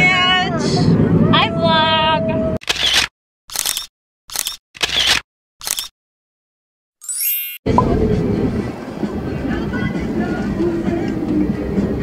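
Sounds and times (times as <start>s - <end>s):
road rumble inside van: 0.0s - 2.6s, 7.8s - 12.0s
camera shutter clicks: 2.7s - 5.9s.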